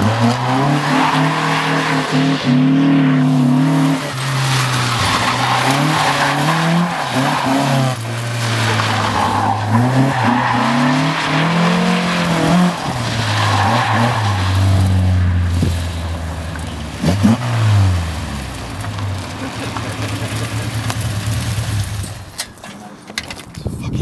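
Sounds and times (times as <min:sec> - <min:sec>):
car engine revving hard: 0:00.0 - 0:16.1, 0:17.0 - 0:22.0
tires squealing: 0:00.0 - 0:22.4.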